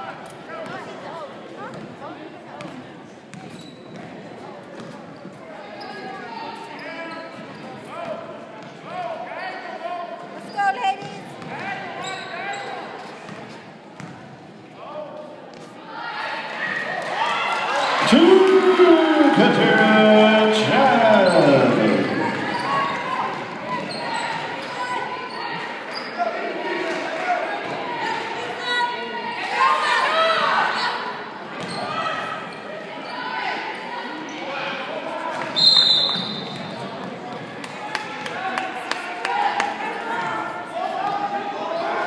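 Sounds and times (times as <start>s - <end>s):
voices calling out: 17.7s - 26.2s
referee's whistle blast: 35.6s - 36.6s.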